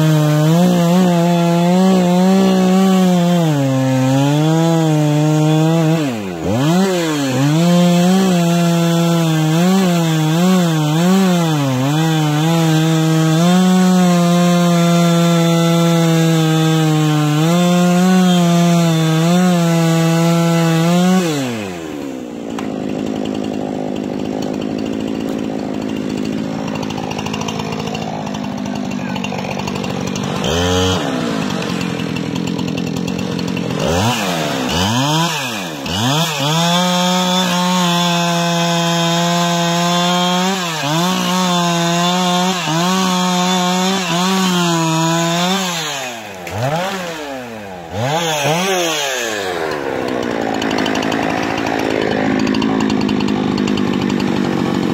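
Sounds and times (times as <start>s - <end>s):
chainsaw cutting wood: 0.0s - 54.9s.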